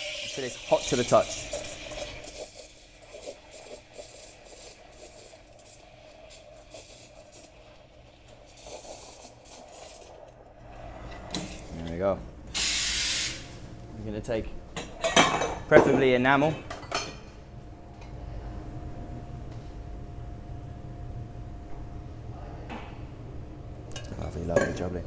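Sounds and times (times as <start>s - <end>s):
steam wand hissing: 0.0s - 10.3s, 12.5s - 13.7s.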